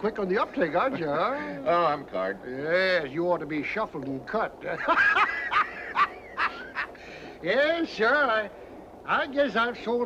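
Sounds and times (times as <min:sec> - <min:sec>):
man laughing: 0:04.7 - 0:07.0.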